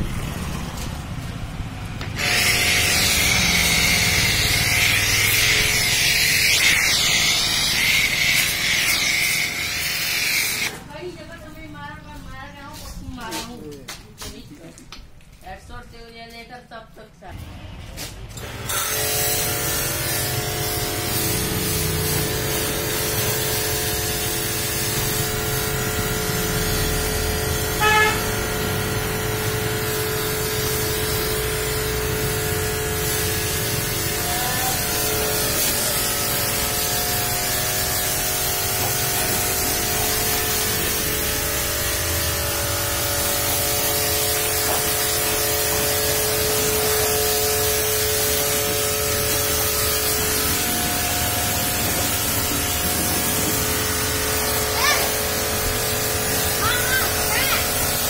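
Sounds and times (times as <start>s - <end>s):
pressure washer motor humming: 0.0s - 11.0s, 18.4s - 58.0s
water jet hissing: 2.2s - 10.8s, 30.3s - 58.0s.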